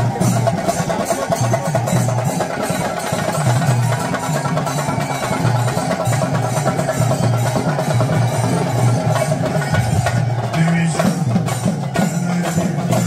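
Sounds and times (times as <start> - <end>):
many drums playing fast beat: 0.0 - 13.0.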